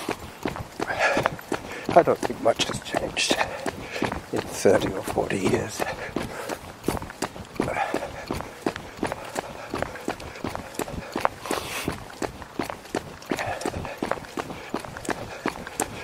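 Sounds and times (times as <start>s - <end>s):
footsteps of person running: 0.0s - 16.0s.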